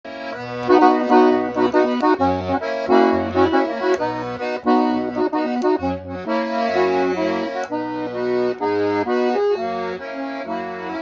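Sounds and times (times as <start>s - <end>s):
piano accordion playing: 0.1s - 11.0s.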